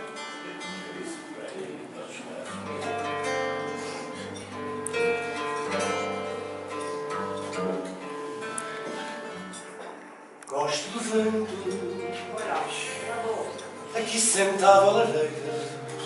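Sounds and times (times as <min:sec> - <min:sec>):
plucked guitar melody: 0:00.0 - 0:16.0
strummed guitar chords: 0:00.0 - 0:16.0.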